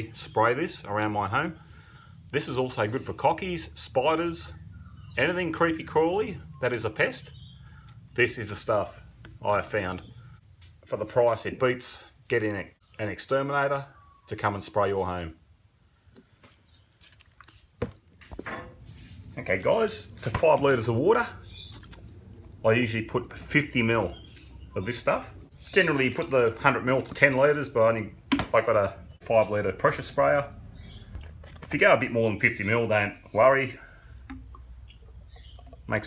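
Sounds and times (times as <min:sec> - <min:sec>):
steady low hum: 0:01.3 - 0:13.0
plastic bottle clicks and taps: 0:34.2 - 0:34.7.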